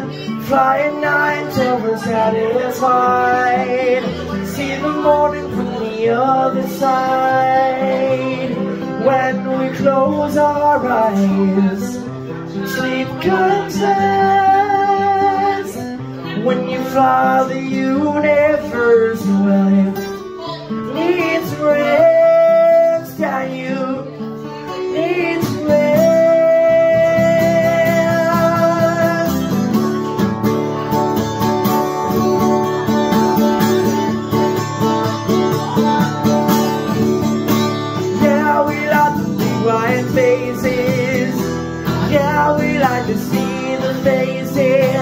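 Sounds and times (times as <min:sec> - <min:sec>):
man singing long held notes: 0:00.0 - 0:29.6, 0:38.0 - 0:45.0
acoustic guitar: 0:00.0 - 0:45.0.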